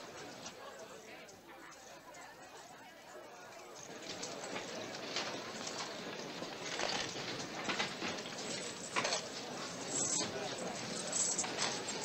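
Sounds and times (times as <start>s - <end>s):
babble of many voices: 0.0s - 12.0s
clicks and clacks from gaming tables: 3.8s - 12.0s.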